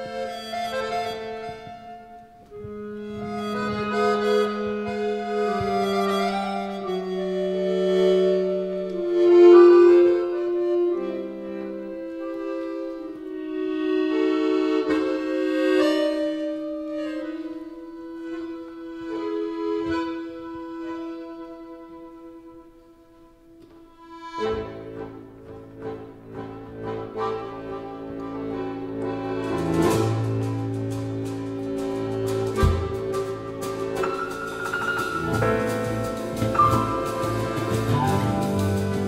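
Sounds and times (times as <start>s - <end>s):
accordion playing slowly: 0.0s - 39.0s.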